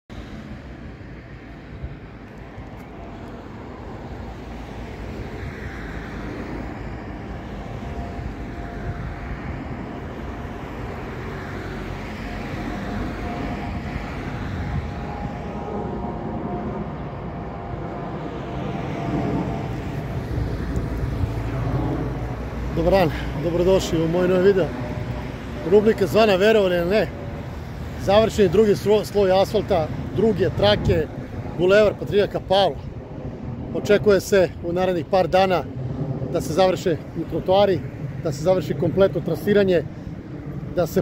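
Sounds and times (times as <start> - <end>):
rushing road traffic: 0.1 - 41.0
faint drone: 0.2 - 28.4.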